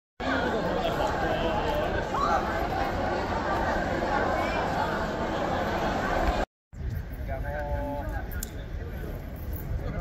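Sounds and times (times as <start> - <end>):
crowd chatter: 0.2 - 10.0.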